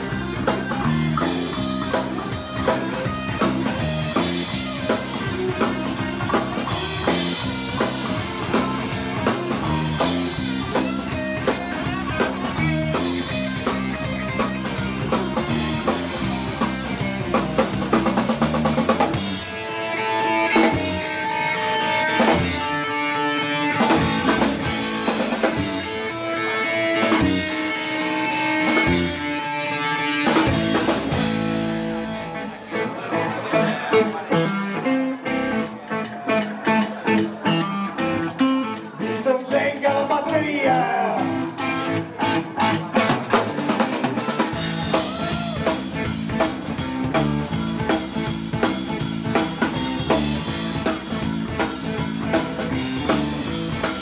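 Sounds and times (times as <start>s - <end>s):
drum kit: 0.0s - 19.7s, 20.5s - 21.3s, 22.1s - 23.0s, 23.6s - 27.9s, 28.6s - 29.4s, 30.1s - 54.0s
bass guitar: 0.0s - 54.0s
electric guitar: 0.0s - 54.0s.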